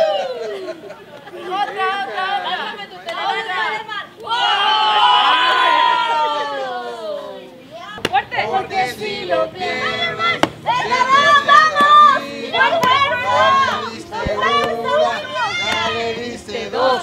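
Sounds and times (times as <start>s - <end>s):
children chattering and shouting: 0.0s - 15.7s.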